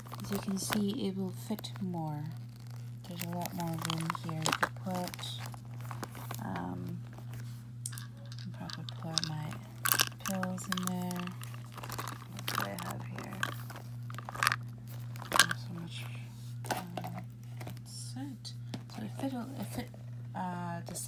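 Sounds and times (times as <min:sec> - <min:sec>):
steady low hum: 0:00.0 - 0:21.0
items knocking in handbag: 0:03.1 - 0:06.7, 0:07.9 - 0:15.7.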